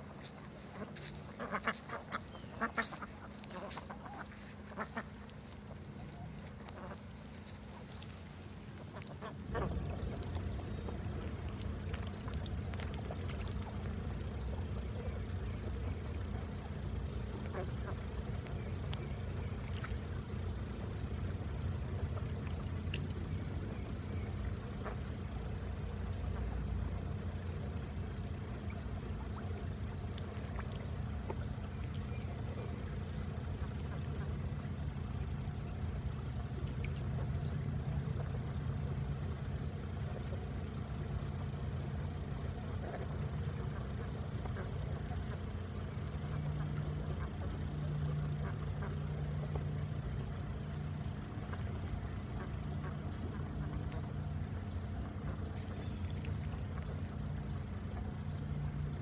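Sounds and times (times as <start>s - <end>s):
low mechanical hum: 0.0s - 59.0s
faint ticks: 0.2s - 21.4s, 28.2s - 37.5s.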